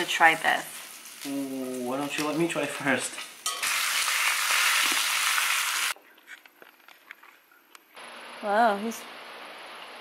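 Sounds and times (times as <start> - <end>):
meat sizzling in a pan: 0.0 - 6.0.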